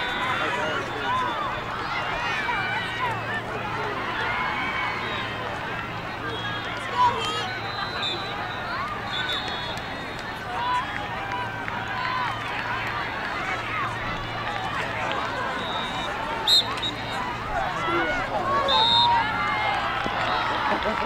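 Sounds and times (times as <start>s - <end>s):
people talking and calling out: 0.0s - 21.0s
referee's whistle blast: 6.3s - 10.2s, 15.5s - 17.2s, 18.5s - 19.2s.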